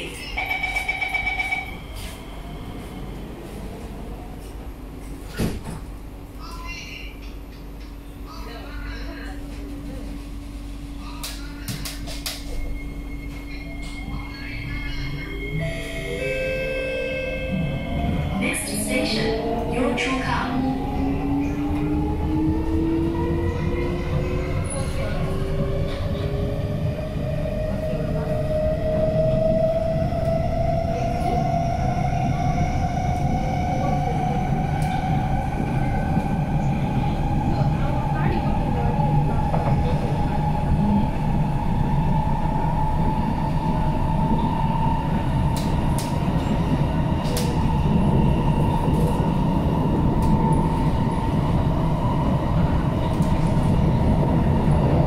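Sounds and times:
train door warning tone: 0.0 - 3.9, 11.8 - 20.6
low hum of train: 0.0 - 55.0.

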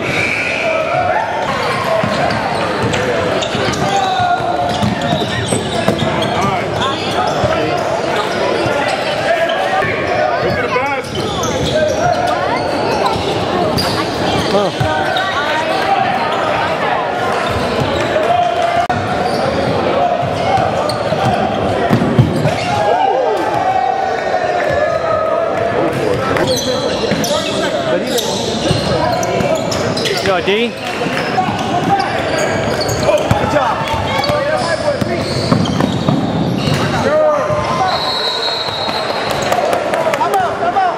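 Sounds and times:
players and spectators chatter: 0.0 - 40.9.

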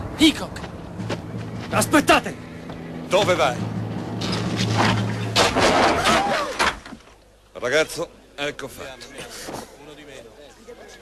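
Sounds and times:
voices crying out: 5.9 - 6.7.

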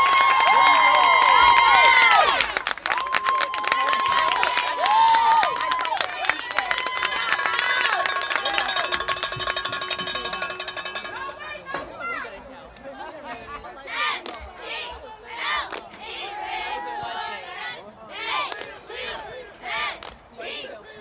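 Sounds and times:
loud shouts: 0.0 - 9.1
crowd shouting and cheering: 0.0 - 12.7, 13.8 - 21.0
fast even rattle: 7.9 - 11.6.

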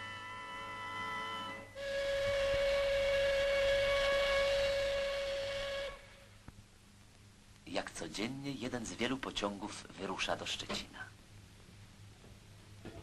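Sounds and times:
steam locomotive whistle blast: 0.0 - 6.3.

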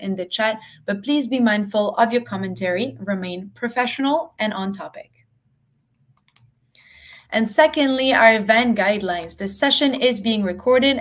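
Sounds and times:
computer mouse clicks: 6.1 - 7.3, 9.0 - 10.1
soft breath: 6.7 - 7.3.

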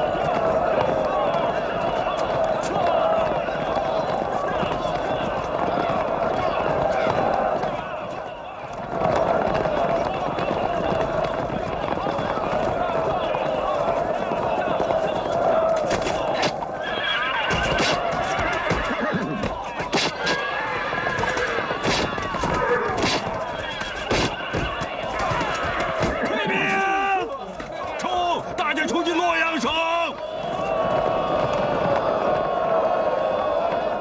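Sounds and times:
men shouting: 0.0 - 8.4, 9.0 - 33.7
galloping hooves: 0.0 - 28.4
horses neighing: 16.4 - 24.6.

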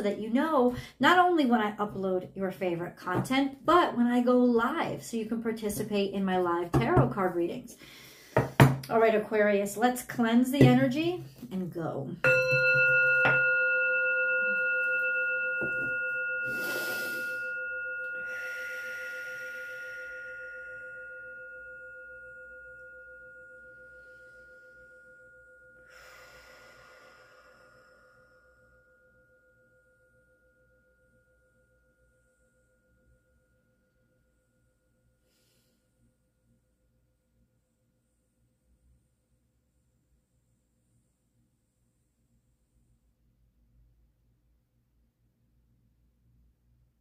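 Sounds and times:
singing bowl ringing: 12.2 - 37.3.

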